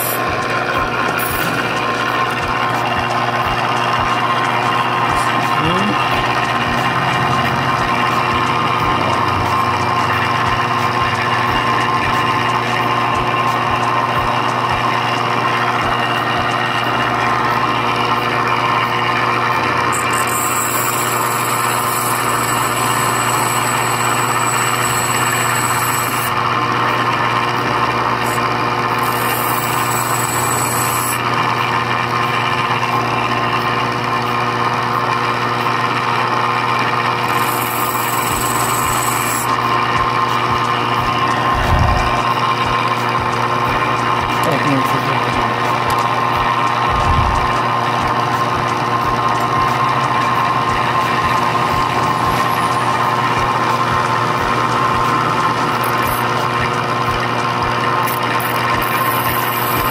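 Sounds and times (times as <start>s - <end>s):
metal grinding hiss: 0.0s - 14.6s
grinding machine motor humming: 0.0s - 59.9s.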